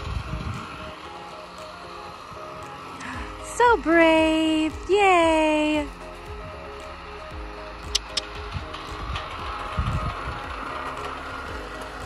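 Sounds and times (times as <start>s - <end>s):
low rumble: 0.0s - 2.5s, 3.2s - 12.0s
background music with repeating notes: 0.0s - 12.0s.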